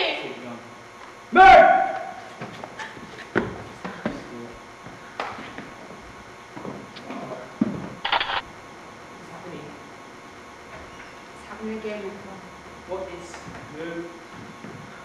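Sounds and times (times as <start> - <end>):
person shouting: 1.3 - 2.2.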